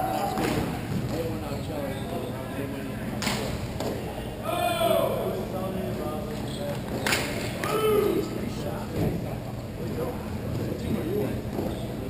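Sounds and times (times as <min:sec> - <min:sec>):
players shouting: 0:04.4 - 0:05.4.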